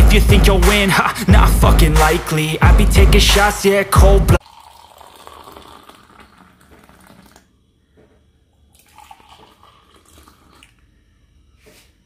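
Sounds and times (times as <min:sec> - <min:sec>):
coffee pouring into a mug: 0:04.4 - 0:07.5, 0:08.7 - 0:10.8.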